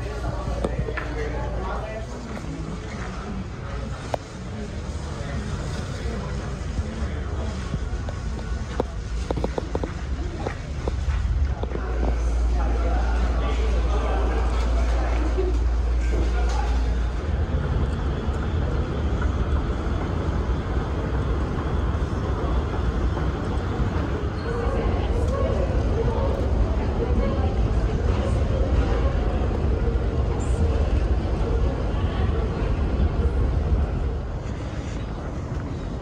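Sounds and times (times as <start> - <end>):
steady low rumble: 0.0 - 36.0
terminal hall noise: 0.0 - 36.0.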